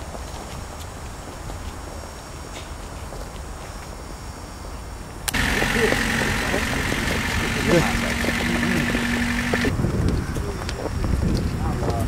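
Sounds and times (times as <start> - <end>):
car engine idling: 5.3 - 9.7.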